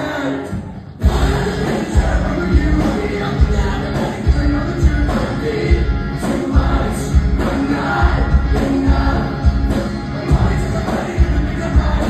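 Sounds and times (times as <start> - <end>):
electric guitar: 0.0 - 12.0
live rock band playing: 0.0 - 12.0
person singing: 0.0 - 12.0.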